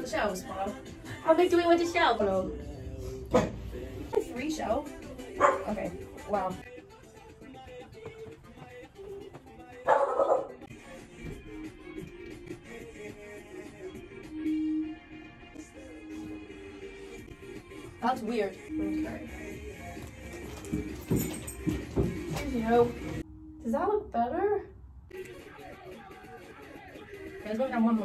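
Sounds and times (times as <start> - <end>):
quiet background music: 0.0 - 28.0
dog barking: 5.4 - 6.0, 9.8 - 10.7.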